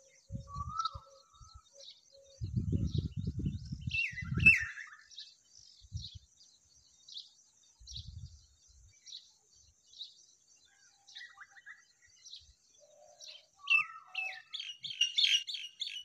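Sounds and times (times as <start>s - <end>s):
small birds chirping: 0.0s - 16.0s
rising bird whistle: 0.4s - 1.6s, 4.0s - 5.1s.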